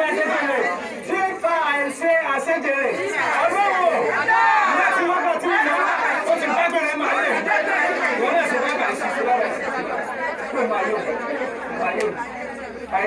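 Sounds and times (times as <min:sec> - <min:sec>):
man speaking through microphone: 0:00.0 - 0:07.4
many voices talking or praying: 0:00.0 - 0:13.0.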